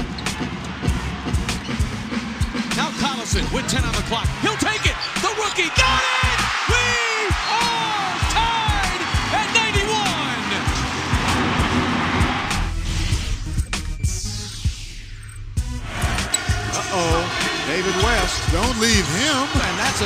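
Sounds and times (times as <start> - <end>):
arena crowd noise: 0.0 - 12.7, 15.8 - 20.0
sneakers squeaking on court: 4.9 - 5.2.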